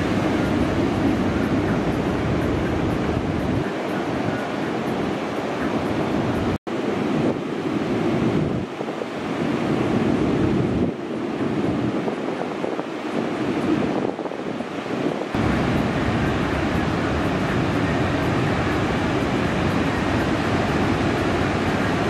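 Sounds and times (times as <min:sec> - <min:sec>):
ocean surf breaking: 0:00.0 - 0:22.0
wind buffeting microphone: 0:00.0 - 0:22.0.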